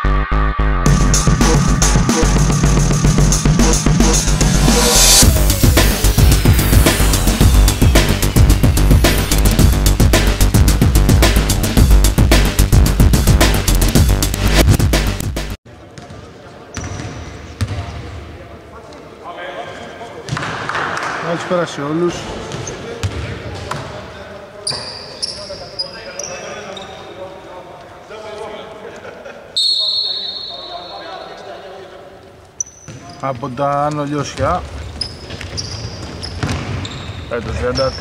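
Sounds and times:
intro music: 0.0s - 15.6s
players' voices: 3.0s - 9.7s, 37.3s - 38.0s
shoe squeaks: 16.7s - 17.2s, 24.6s - 27.2s, 29.6s - 31.5s, 32.5s - 33.5s, 34.4s - 38.0s
basketball bouncing on hardwood: 36.0s - 36.8s.

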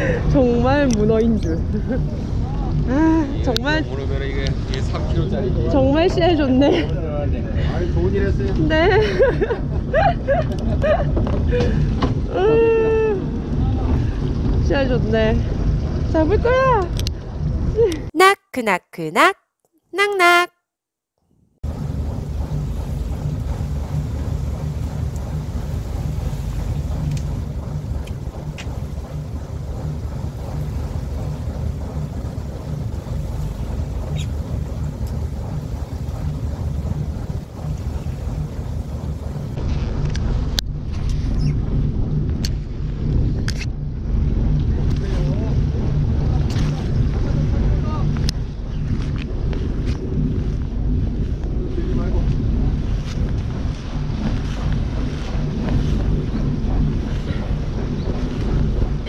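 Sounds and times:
boat engine droning: 0.0s - 18.0s, 21.6s - 59.0s
wind buffeting microphone: 21.6s - 59.0s.

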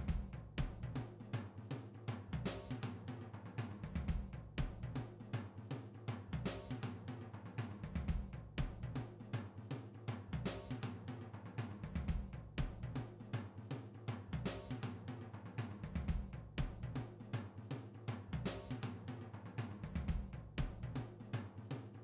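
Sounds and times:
music with drum beat: 0.0s - 22.0s.

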